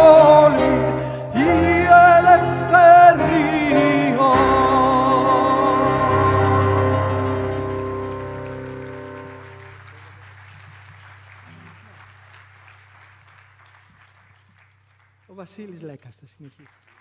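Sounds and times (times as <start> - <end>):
acoustic ensemble closing chord: 0.0 - 9.8
faint applause: 3.0 - 15.4.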